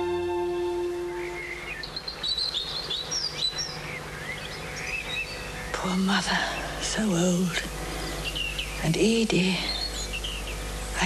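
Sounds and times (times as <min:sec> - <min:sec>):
orchestral music: 0:00.0 - 0:01.7
birds chirping: 0:00.0 - 0:11.0.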